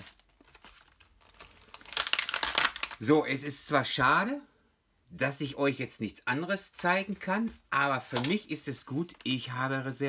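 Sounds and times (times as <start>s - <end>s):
plastic packaging crinkling: 0.0s - 3.1s.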